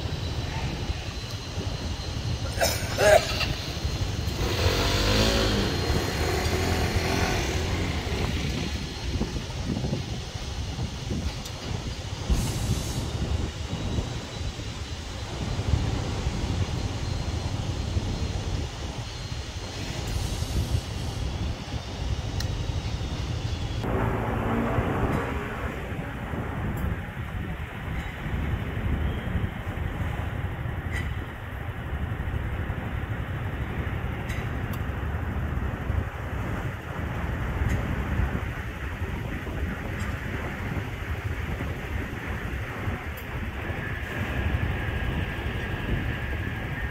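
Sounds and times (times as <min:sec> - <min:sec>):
passing cars and scooters: 0:03.2 - 0:10.2, 0:23.8 - 0:46.9.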